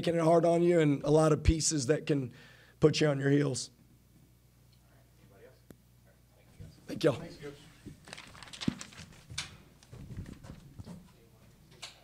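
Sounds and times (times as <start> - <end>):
handling knocks and thumps: 7.8 - 11.2.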